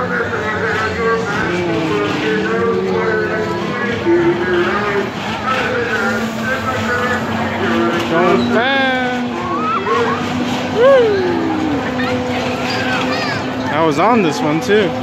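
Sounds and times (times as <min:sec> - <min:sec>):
mechanical hum of ride: 0:00.0 - 0:15.0
people talking and calling out: 0:00.0 - 0:15.0
person whooping: 0:01.4 - 0:03.8, 0:09.5 - 0:12.2.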